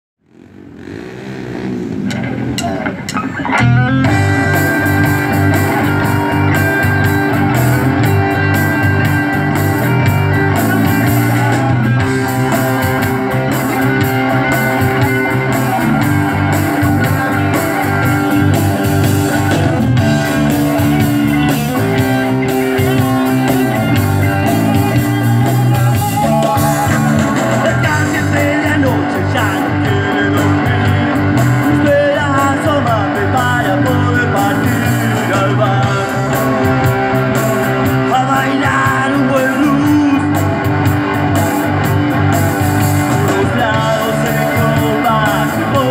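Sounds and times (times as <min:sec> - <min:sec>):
rock band playing live: 0:01.9 - 0:45.9.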